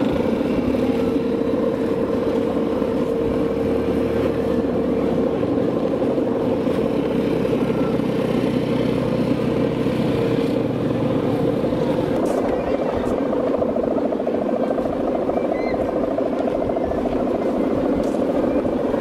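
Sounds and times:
kite bow humming: 0.0s - 19.0s.

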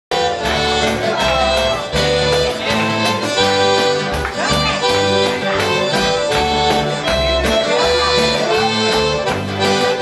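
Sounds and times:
accordion melody: 0.1s - 10.0s
electric bass: 0.1s - 10.0s
strummed acoustic guitar: 0.1s - 10.0s.

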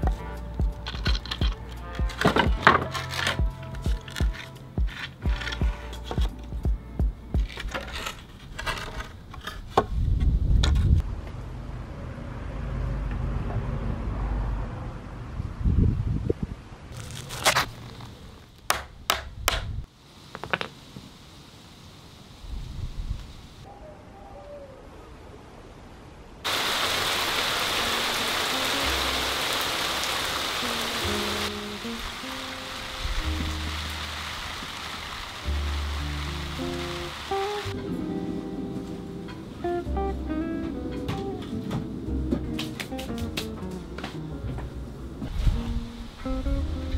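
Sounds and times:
plucked guitar music: 0.0s - 7.8s, 28.5s - 34.3s, 35.4s - 46.9s
wooden boards on brick paving: 0.0s - 11.4s, 16.9s - 21.2s, 40.7s - 45.8s
sharp knocks: 18.7s - 19.7s
heavy rain hissing: 19.9s - 23.7s, 26.4s - 37.9s.

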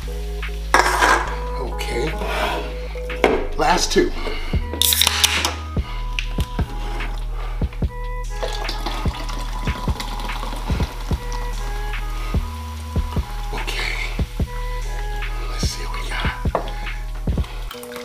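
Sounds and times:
hip-hop beat: 0.0s - 18.0s
cans cracked open hiss: 4.7s - 6.5s
soda fizzing while poured: 8.3s - 12.3s.

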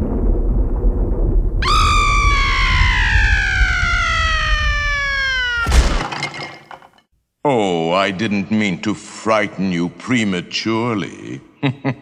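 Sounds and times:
thunder rumbling: 0.0s - 6.0s
high scream sliding down in pitch: 1.6s - 6.0s
crash of something shattering: 1.6s - 7.0s.

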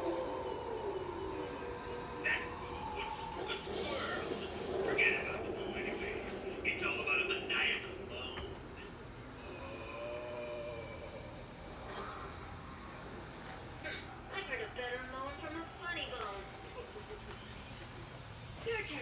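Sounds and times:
wavering cartoon vocal sound: 8.6s - 14.0s.

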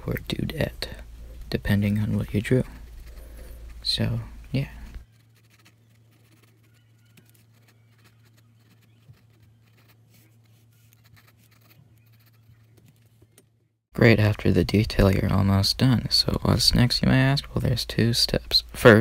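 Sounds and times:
low steady hum: 0.0s - 13.3s, 14.0s - 19.0s
pencil scratching on paper: 2.0s - 3.9s, 5.0s - 13.2s.

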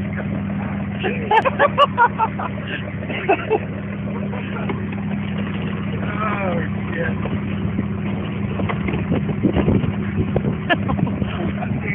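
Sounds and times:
vehicle engine idling: 0.0s - 11.9s.

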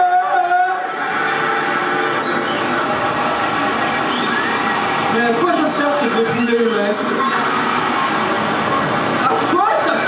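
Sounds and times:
harsh electronic synthesizer noise: 0.0s - 10.0s.

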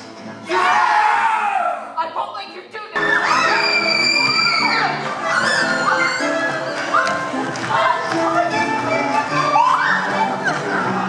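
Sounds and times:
chorus shouting and yelling: 0.4s - 2.0s, 3.0s - 11.0s.

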